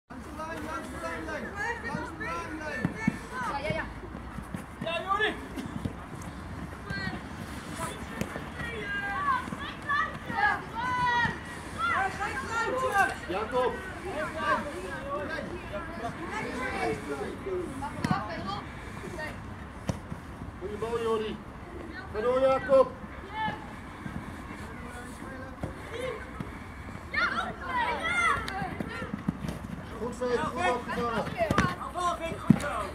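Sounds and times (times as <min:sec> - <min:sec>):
low field noise: 0:00.1 - 0:32.9
voices calling out and shouting: 0:00.1 - 0:32.9
young players shouting: 0:07.8 - 0:17.3, 0:25.8 - 0:29.2.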